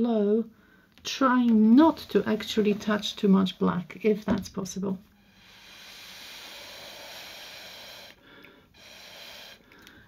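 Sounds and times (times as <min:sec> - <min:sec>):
breath blown through a straw: 0:05.2 - 0:10.0.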